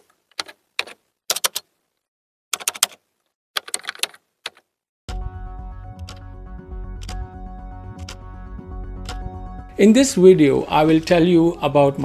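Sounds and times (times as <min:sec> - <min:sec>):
rapid keyboard key clicks: 0:00.3 - 0:01.7, 0:02.6 - 0:03.0, 0:03.6 - 0:04.7.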